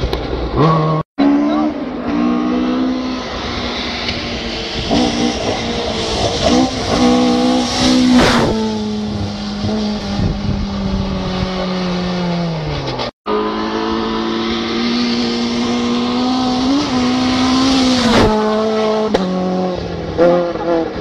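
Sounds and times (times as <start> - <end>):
car passing close: 0.0 - 21.0
rally car engines at high revs: 0.0 - 21.0.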